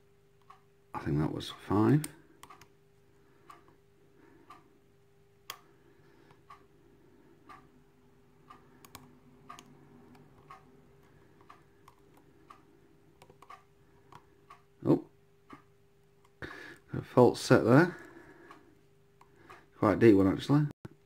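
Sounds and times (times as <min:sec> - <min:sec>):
soft ticking: 0:00.2 - 0:19.9.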